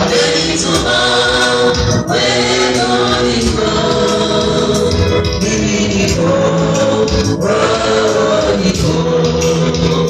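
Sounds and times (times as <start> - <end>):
choir singing through loudspeakers: 0.0 - 10.0.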